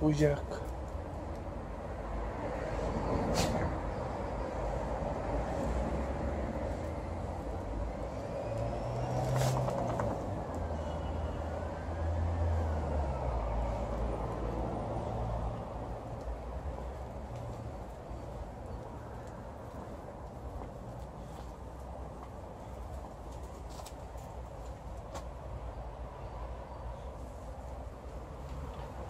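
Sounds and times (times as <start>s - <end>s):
low rumble of vehicle traffic: 0.0s - 29.0s
short hisses: 3.3s - 3.7s.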